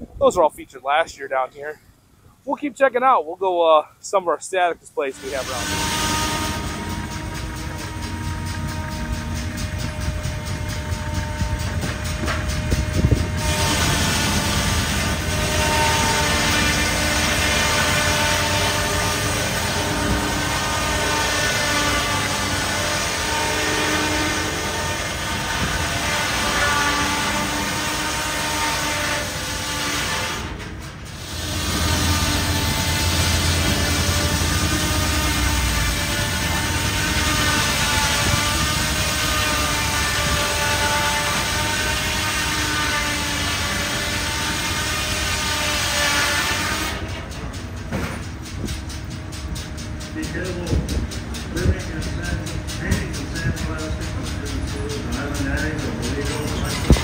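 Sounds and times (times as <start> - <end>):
circular saw cutting log: 5.0 - 47.4, 49.8 - 57.0
rapid even clatter: 47.0 - 57.0.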